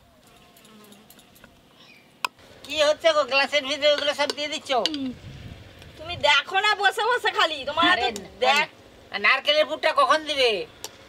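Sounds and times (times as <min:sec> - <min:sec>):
flying insect buzzing: 0:00.0 - 0:02.6.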